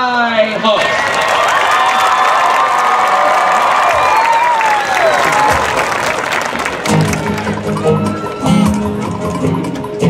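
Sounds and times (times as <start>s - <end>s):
crowd cheering and applauding: 0.5s - 10.0s.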